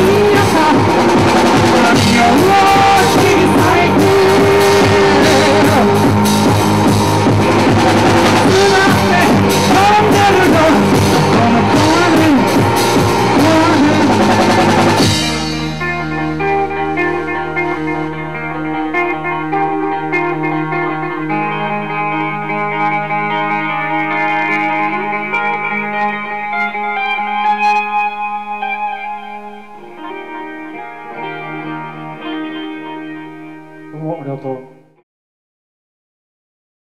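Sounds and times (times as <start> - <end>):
full band playing loudly: 0.0 - 34.6
distorted electric guitar drone: 0.0 - 35.0.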